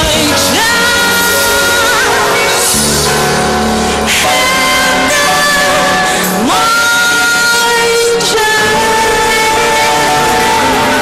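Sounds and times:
live band playing: 0.0s - 11.0s
woman singing: 0.0s - 11.0s.

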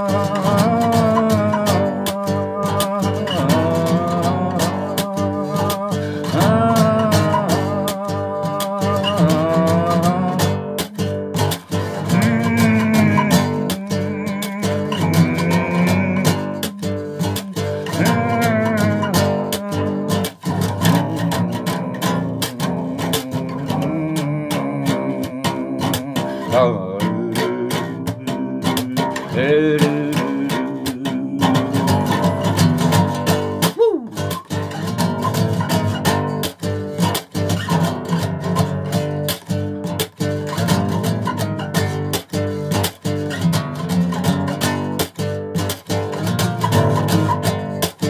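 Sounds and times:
bass guitar fingerstyle: 0.0s - 48.0s.

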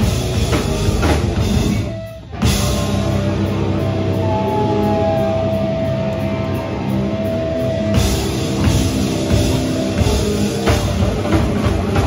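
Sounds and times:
distorted guitars: 0.0s - 12.0s
drum kit: 0.0s - 12.0s.

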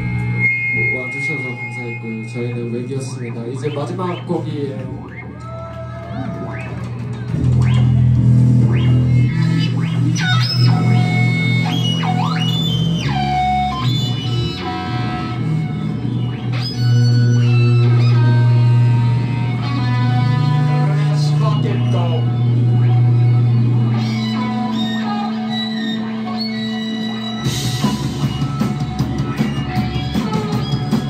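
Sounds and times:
bass guitar: 0.0s - 31.0s
live band playing: 0.0s - 31.0s
electric guitar sliding tones: 6.4s - 31.0s.

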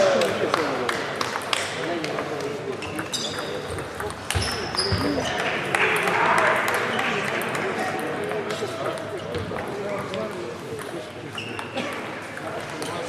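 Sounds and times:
crowd noise: 0.0s - 13.0s
table tennis balls clicking: 1.2s - 13.0s.

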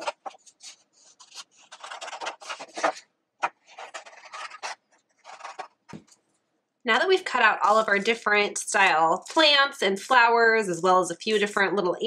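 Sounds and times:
paper rustling: 0.0s - 6.3s
scissors snipping paper: 1.1s - 5.7s.

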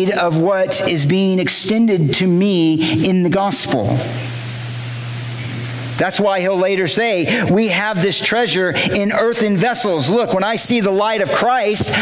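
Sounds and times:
low even hum: 0.0s - 12.0s
steady hiss: 3.3s - 8.9s.

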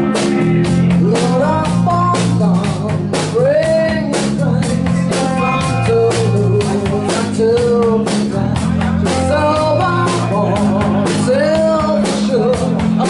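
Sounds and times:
drum kit beat: 0.0s - 13.0s
electric bass: 0.0s - 13.0s
electric guitar: 0.0s - 13.0s
woman singing: 1.0s - 13.0s.

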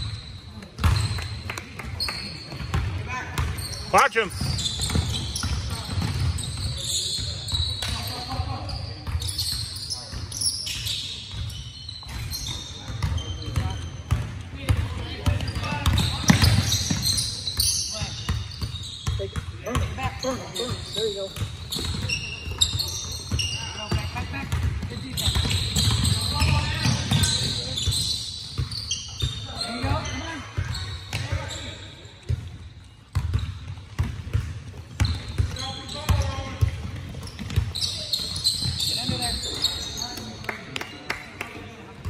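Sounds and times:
sneakers squeaking: 0.0s - 40.4s
voices of players and onlookers: 0.2s - 42.0s
basketball dribbling: 21.0s - 28.8s.

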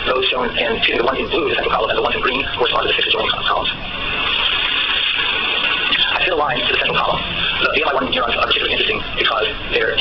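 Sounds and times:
steady high hiss: 0.0s - 10.0s
person talking: 6.0s - 10.0s.

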